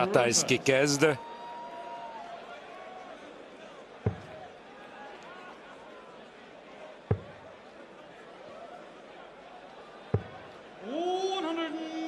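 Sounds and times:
murmur of large crowd: 0.0s - 12.0s
dart striking dartboard: 7.1s - 7.4s.

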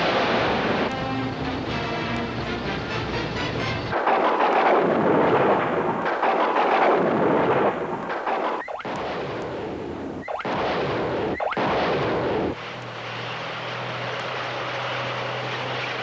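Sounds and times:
rockets launching with rushing roar: 0.0s - 16.0s.

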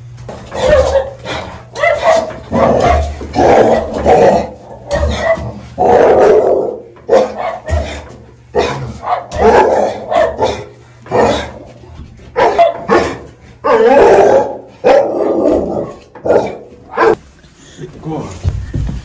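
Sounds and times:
dog barking: 0.5s - 11.6s, 12.4s - 15.4s, 16.2s - 17.2s.

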